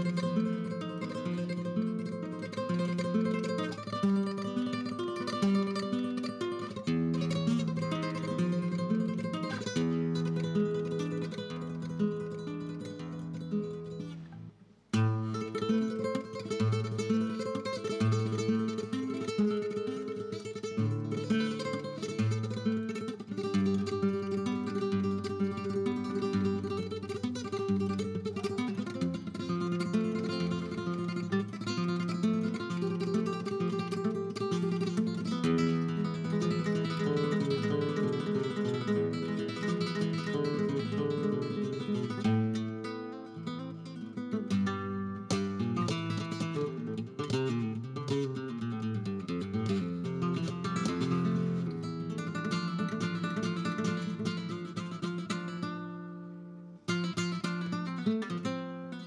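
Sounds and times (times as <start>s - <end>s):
solo flamenco guitar: 0.0s - 59.0s.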